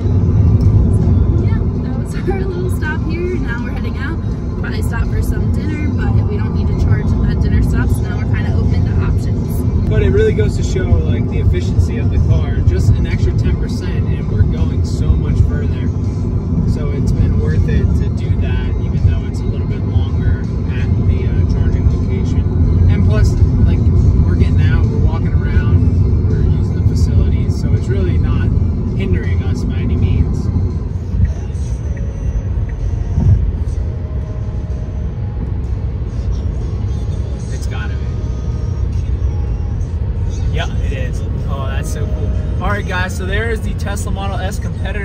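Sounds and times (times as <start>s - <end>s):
faint music: 0.0s - 45.0s
road and tyre rumble in car: 0.0s - 45.0s.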